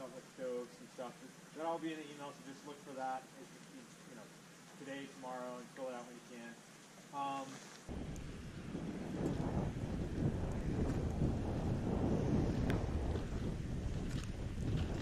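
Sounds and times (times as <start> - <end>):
wind buffeting microphone: 7.9 - 15.0.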